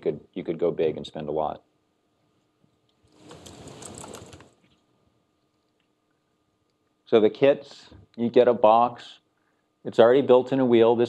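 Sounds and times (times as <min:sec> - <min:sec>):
cloth rustling against microphone: 0:03.0 - 0:04.8.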